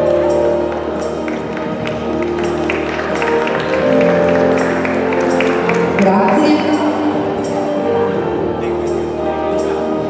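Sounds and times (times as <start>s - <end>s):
ballroom dance music: 0.0s - 10.0s.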